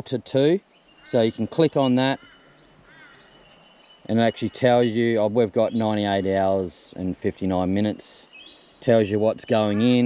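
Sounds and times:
faint bird chirp: 0:00.0 - 0:10.0
man's voice: 0:04.1 - 0:08.2, 0:08.8 - 0:10.0.

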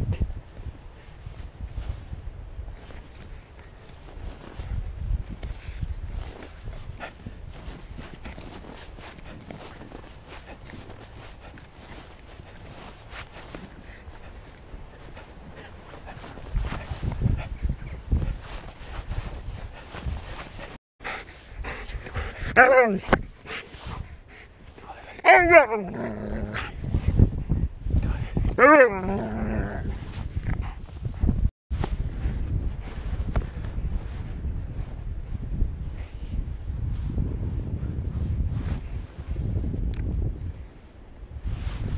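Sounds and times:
paws knocking and rustling: 0:03.8 - 0:20.8
dog crunching and scuffing snow: 0:05.5 - 0:17.5, 0:18.2 - 0:20.8.

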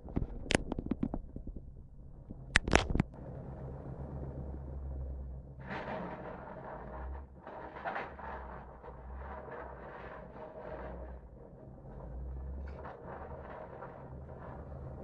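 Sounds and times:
heavy vehicles rumbling: 0:01.8 - 0:15.0
rough grinding noise: 0:05.6 - 0:15.0.

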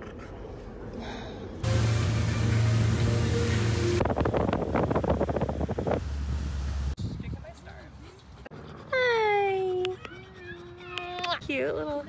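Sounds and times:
music playing: 0:01.6 - 0:04.1
boat engine hum: 0:01.6 - 0:07.0
water noise: 0:01.6 - 0:07.0
wind noise: 0:04.0 - 0:07.6
wind buffeting microphone: 0:04.0 - 0:07.7.

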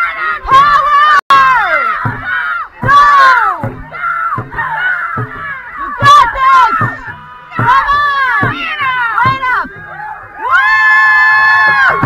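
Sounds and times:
long yells falling in pitch: 0:00.0 - 0:12.0
people shouting and cheering: 0:00.0 - 0:12.0.

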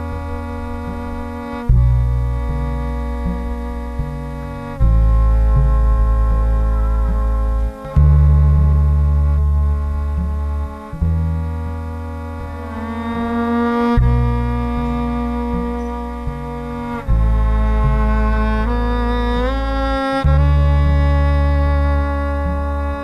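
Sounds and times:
bowed electric bass notes: 0:00.0 - 0:23.0
steady higher held tones: 0:00.0 - 0:23.0.

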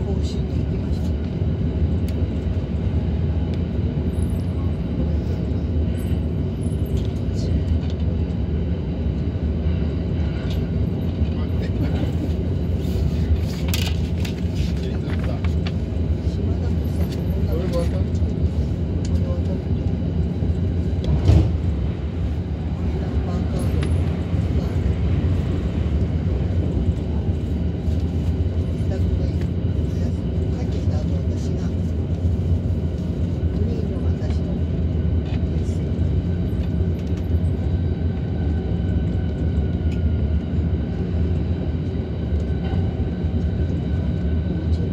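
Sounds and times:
train running rumble: 0:00.0 - 0:44.9.

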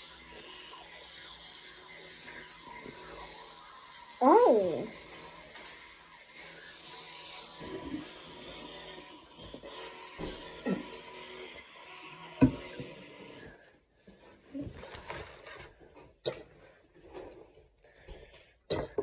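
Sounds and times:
toothbrush scrubbing teeth: 0:00.0 - 0:18.5.

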